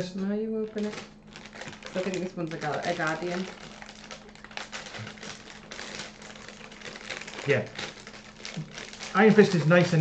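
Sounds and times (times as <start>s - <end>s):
plastic packets crinkling and tearing: 0.7s - 10.0s.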